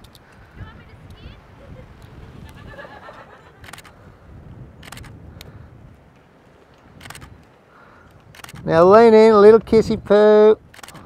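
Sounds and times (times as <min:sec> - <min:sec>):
wind rumble: 0:00.0 - 0:11.0
camera shutter clicks: 0:03.6 - 0:04.0, 0:04.8 - 0:05.2, 0:07.0 - 0:07.4, 0:08.3 - 0:08.7, 0:10.7 - 0:11.0.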